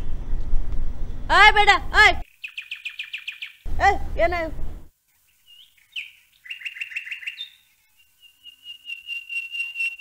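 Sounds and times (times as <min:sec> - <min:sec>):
bird chirping rapid high notes: 0:05.5 - 0:10.0.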